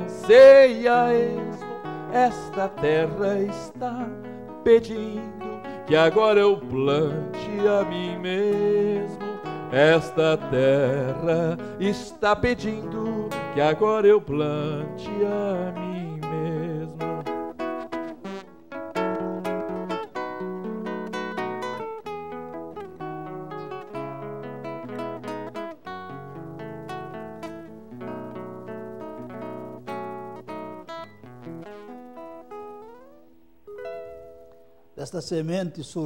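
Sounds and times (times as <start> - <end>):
fingerstyle acoustic guitar: 0.0 - 35.0.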